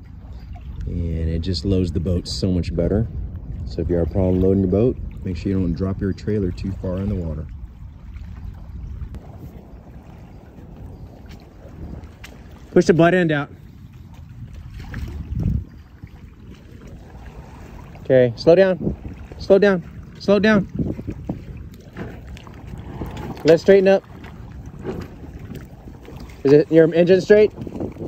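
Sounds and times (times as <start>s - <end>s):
water stirring around hull: 0.0s - 28.0s
wind buffeting microphone: 0.0s - 28.0s
motorboat engine: 0.8s - 28.0s.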